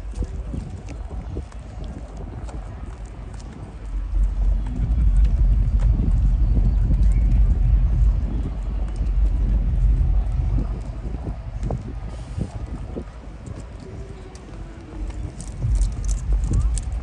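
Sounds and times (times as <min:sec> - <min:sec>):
crowd chatter: 0:00.0 - 0:17.0
footsteps on paved path: 0:00.0 - 0:17.0
wind buffeting microphone: 0:00.0 - 0:17.0.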